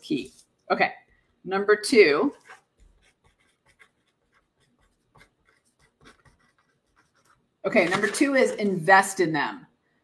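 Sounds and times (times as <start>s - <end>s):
pen scratching on paper: 2.3s - 8.4s.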